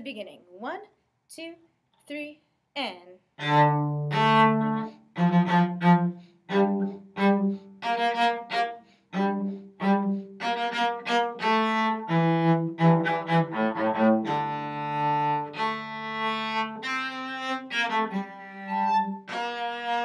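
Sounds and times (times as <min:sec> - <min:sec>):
bowed cello: 0:03.4 - 0:20.0.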